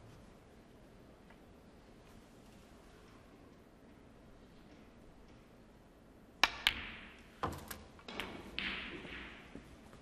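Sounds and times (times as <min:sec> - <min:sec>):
soft hiss: 0:00.0 - 0:08.1
dull knock of balls: 0:06.4 - 0:09.8
snooker balls clicking: 0:06.4 - 0:10.0.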